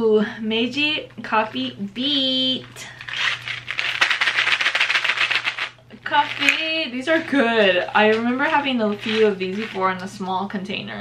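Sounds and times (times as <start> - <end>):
candies rattling in a tube: 2.8 - 10.1.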